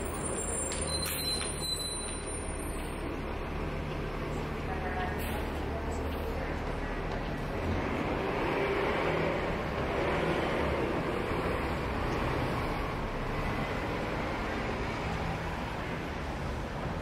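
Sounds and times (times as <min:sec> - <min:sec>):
street traffic passing: 0:00.0 - 0:17.0.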